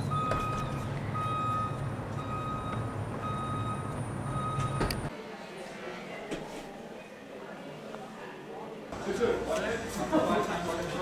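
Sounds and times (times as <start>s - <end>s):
reversing alarm beeping: 0.0s - 5.1s.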